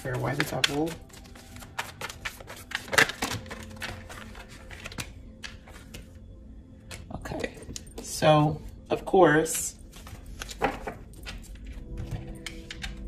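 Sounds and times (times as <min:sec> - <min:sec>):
cards being shuffled: 0:00.0 - 0:06.1, 0:09.9 - 0:13.0.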